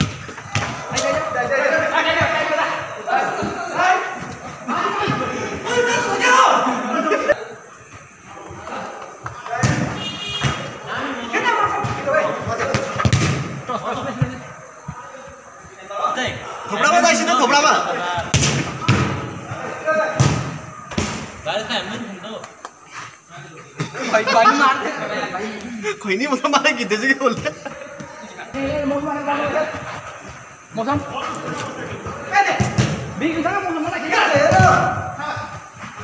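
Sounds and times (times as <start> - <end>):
ball kicked with sharp thud: 0.0 - 1.0, 11.8 - 13.6, 18.3 - 19.2, 20.2 - 21.3, 32.6 - 33.0
players shouting: 0.0 - 22.2, 24.2 - 36.0.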